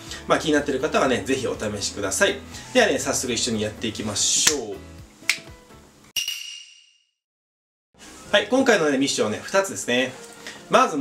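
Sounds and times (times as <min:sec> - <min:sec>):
finger snap: 0:04.4 - 0:05.6.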